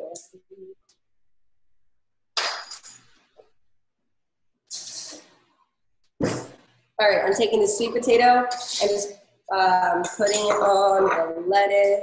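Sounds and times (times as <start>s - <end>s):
kitchenware clinking: 10.0s - 12.0s.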